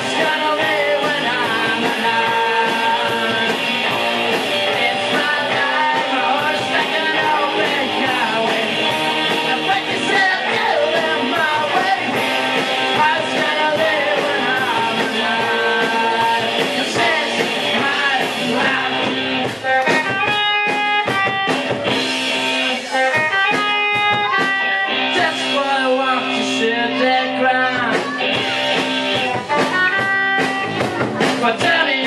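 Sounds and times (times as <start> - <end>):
rock band playing live: 0.0 - 32.0.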